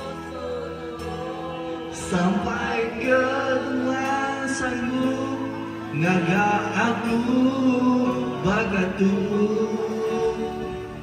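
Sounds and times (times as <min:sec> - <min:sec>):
karaoke backing music: 0:00.0 - 0:11.0
man singing into microphone: 0:00.0 - 0:11.0.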